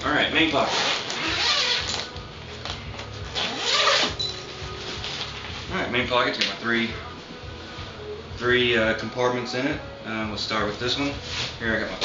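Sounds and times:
zipper being drawn open: 0.6s - 2.1s, 3.3s - 4.2s.

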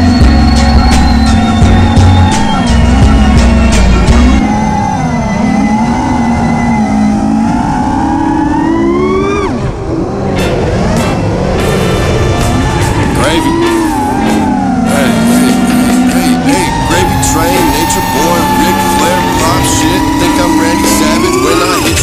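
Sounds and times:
quadcopter motors whining: 0.0s - 10.2s, 12.3s - 22.0s.

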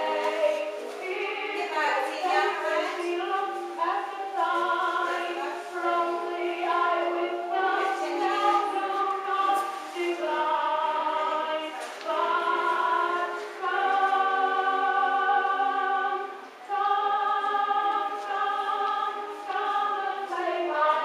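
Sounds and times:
choir singing: 0.0s - 21.0s.

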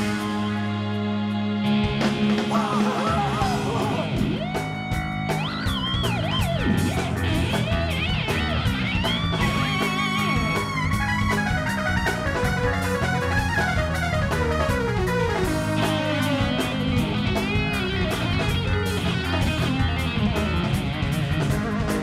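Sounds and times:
electric guitar lead: 0.0s - 22.0s
rock band playing: 0.0s - 22.0s.

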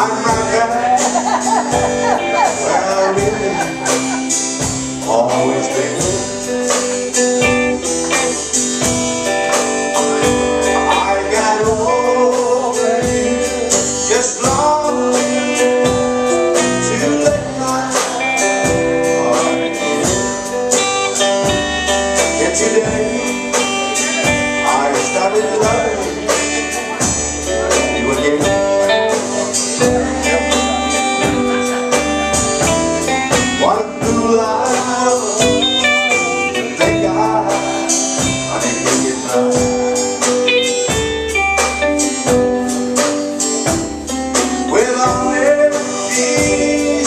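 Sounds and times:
person singing lead: 0.0s - 8.1s, 9.8s - 42.4s, 43.6s - 47.0s
country blues band playing: 0.0s - 47.0s.

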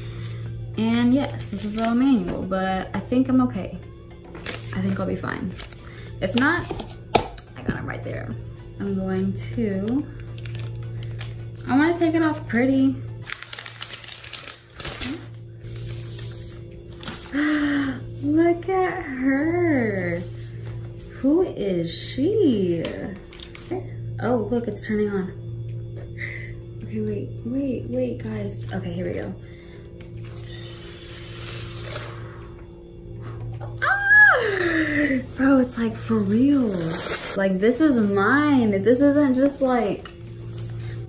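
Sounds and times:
steady low hum: 0.0s - 41.0s
plastic wrap rustling: 10.2s - 11.4s, 13.2s - 17.4s, 35.2s - 37.4s
plastic wrap crackling: 10.2s - 11.5s, 13.2s - 15.4s.

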